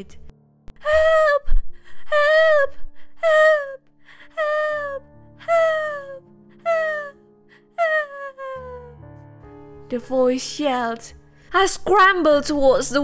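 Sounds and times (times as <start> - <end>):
low background music: 0.0 - 13.0.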